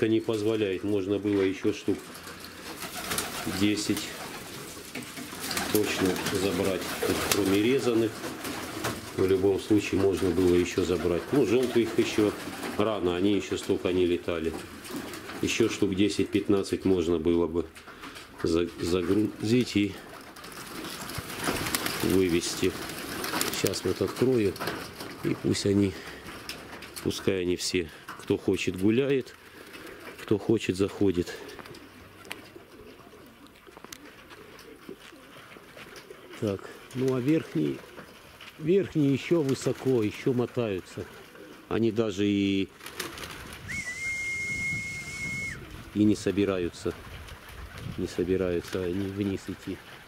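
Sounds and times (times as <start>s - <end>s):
pigeons: 0.0s - 50.0s
wings flapping: 2.0s - 13.7s, 14.5s - 15.8s, 19.0s - 27.3s, 31.4s - 41.7s, 42.6s - 50.0s
high whistle: 43.7s - 45.6s.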